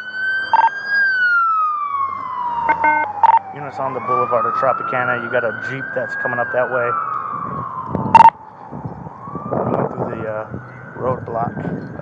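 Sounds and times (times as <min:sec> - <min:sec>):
police siren wailing: 0:00.0 - 0:12.0.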